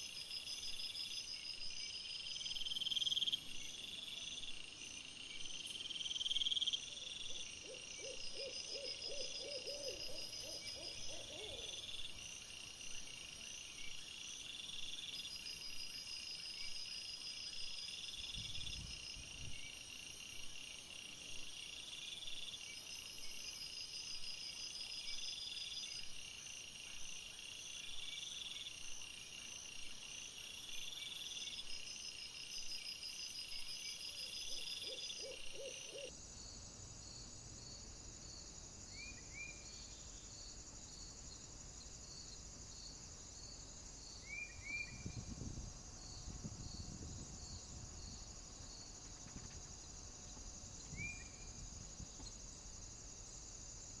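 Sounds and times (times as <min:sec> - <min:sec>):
insects chirping: 0:00.0 - 0:54.0.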